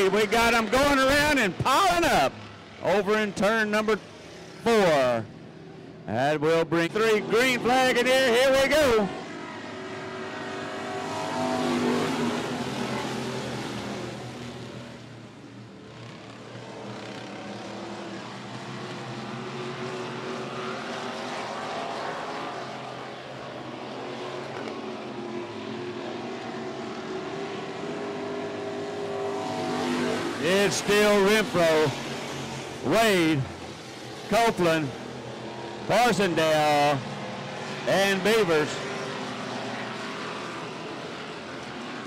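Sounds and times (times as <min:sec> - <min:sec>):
race car engines accelerating: 0:00.0 - 0:42.0.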